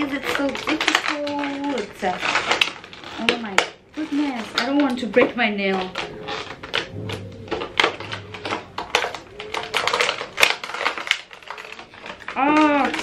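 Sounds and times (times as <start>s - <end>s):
plastic packaging crackling: 0.0s - 13.0s.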